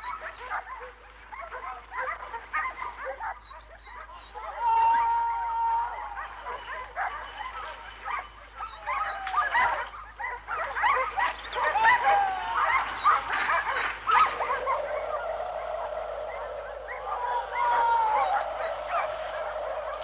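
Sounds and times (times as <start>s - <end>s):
dogs barking and yelping: 0.0s - 20.0s.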